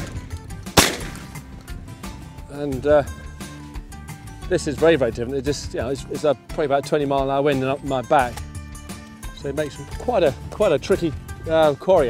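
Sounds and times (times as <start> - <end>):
background music: 0.0 - 12.0
shotgun shot: 0.7 - 1.4.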